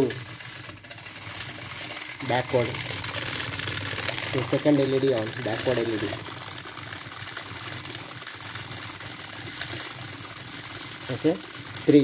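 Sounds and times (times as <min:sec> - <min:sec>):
small motors whirring: 0:00.0 - 0:12.0.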